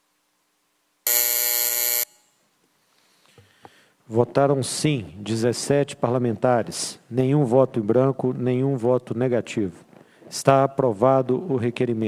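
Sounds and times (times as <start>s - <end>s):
electronic buzzer tone: 1.1s - 2.3s.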